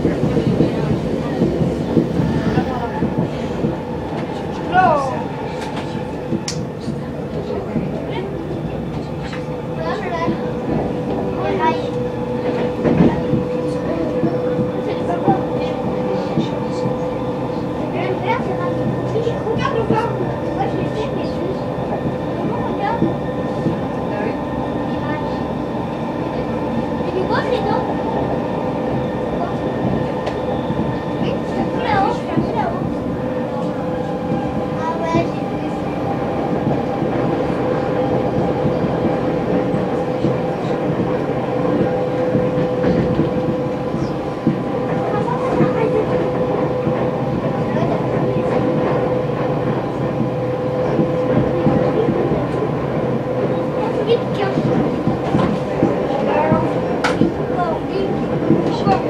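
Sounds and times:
train rolling noise: 0.0 - 59.0.

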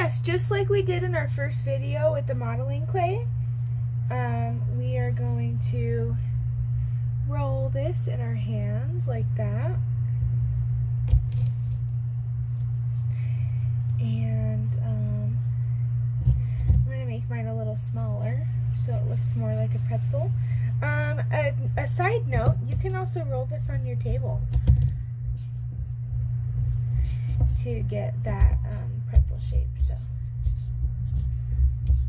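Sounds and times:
low hum: 0.0 - 32.0.

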